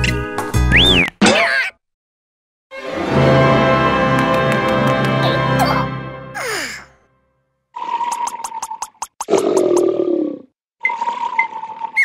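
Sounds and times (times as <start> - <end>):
background music: 2.7 - 7.2.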